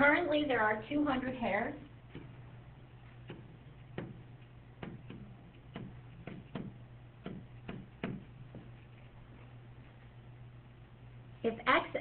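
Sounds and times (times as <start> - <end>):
low steady hum: 0.0 - 12.0
stylus tapping on tablet screen: 2.1 - 2.4, 3.2 - 8.8.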